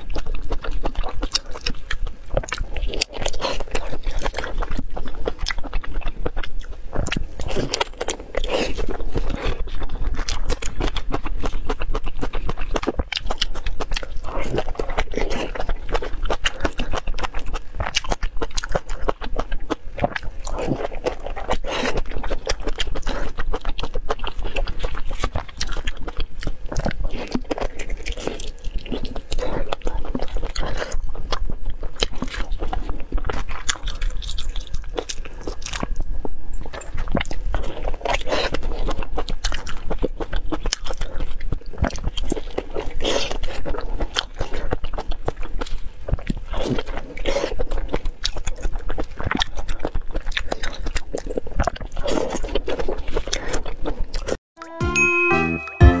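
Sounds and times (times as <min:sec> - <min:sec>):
chewing and biting meat: 0:00.0 - 0:54.4.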